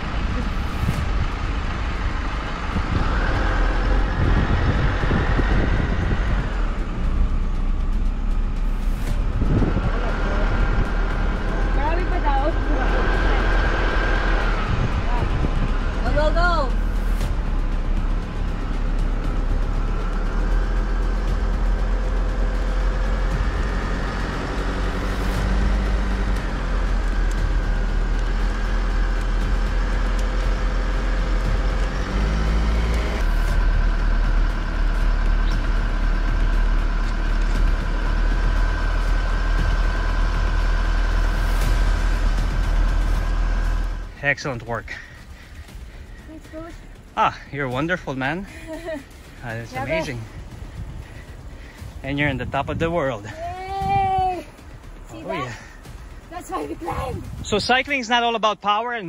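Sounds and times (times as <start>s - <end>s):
slow vehicle engine and road noise: 0.0s - 59.0s.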